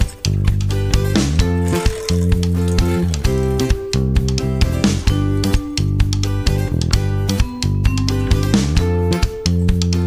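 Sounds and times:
background music with plucked notes: 0.0 - 10.0.

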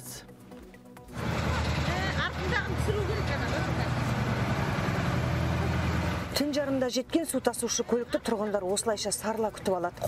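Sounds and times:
truck engine humming: 1.1 - 7.9.

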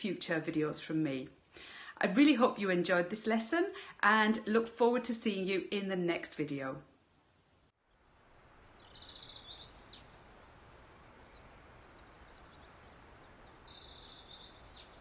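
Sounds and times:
outdoor ambient hiss: 0.0 - 15.0
songbird trilling: 7.9 - 15.0.

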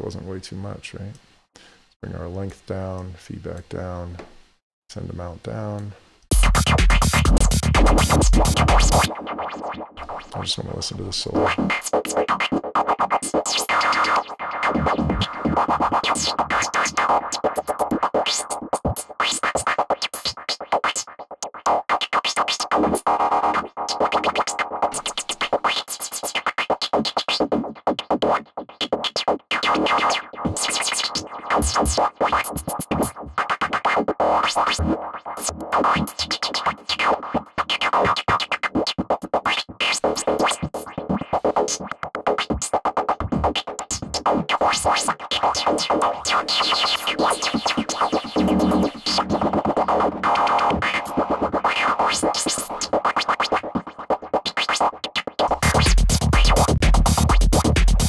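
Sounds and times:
stuttering noise synth lead: 48.2 - 50.8.

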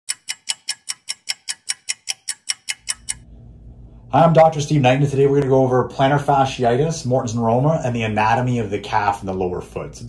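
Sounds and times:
fast sharp ticking: 0.1 - 3.2
low steady hum: 2.9 - 10.0.

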